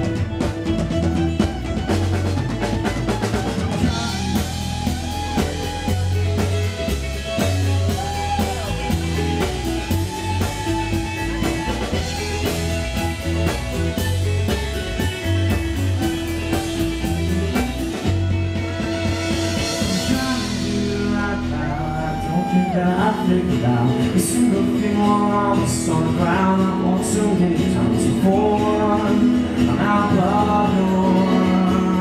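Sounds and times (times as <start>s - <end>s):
live band playing: 0.0s - 32.0s.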